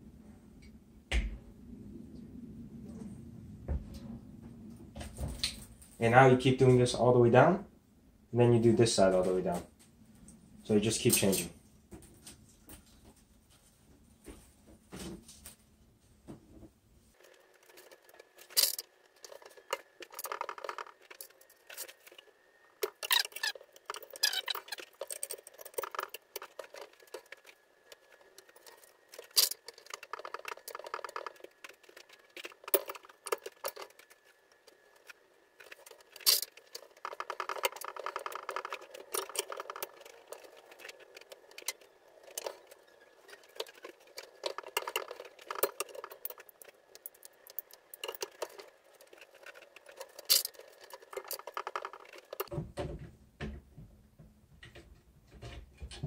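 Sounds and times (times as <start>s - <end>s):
string rustling and scraping: 9.0s - 53.0s.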